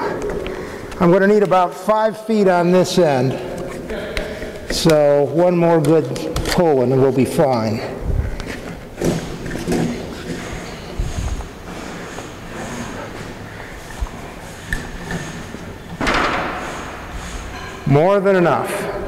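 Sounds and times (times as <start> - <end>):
knocks and thuds: 16.0 - 16.7.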